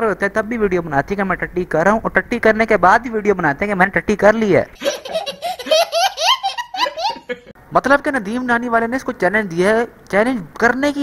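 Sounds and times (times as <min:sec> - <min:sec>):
toddler laughing: 0:04.8 - 0:07.6.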